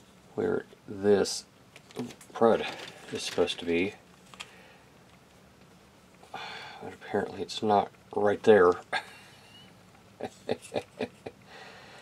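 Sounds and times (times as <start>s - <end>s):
man chuckling: 8.9s - 11.5s.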